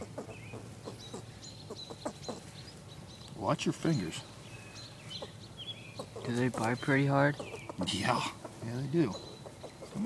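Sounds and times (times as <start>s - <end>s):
squirrel clucking calls: 0.0s - 10.0s.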